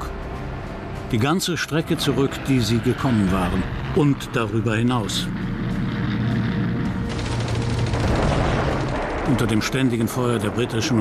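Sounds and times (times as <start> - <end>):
background music: 0.0 - 11.0
low rumble: 3.6 - 10.8
rapid gunfire crackle: 7.0 - 10.2.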